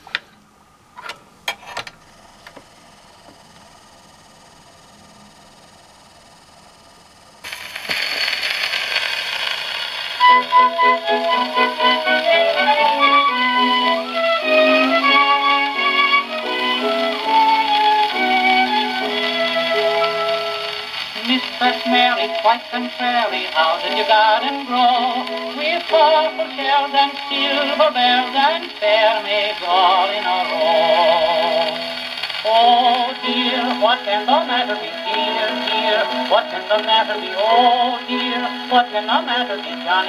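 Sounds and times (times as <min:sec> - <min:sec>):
record surface hiss: 0:00.0 - 0:40.0
orchestral music from record: 0:10.2 - 0:40.0.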